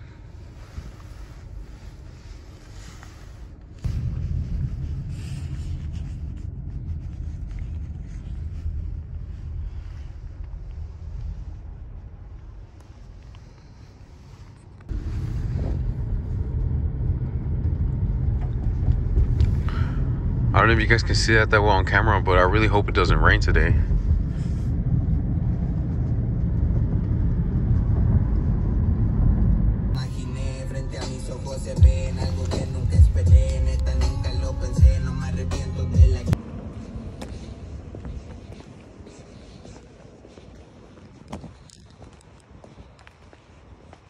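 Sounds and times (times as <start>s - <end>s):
car engine and tyres rumbling: 0.0s - 44.0s.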